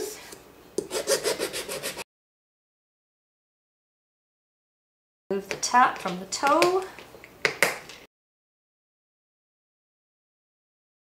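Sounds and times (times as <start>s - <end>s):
hand file rasping on shoe sole: 0.8s - 2.0s.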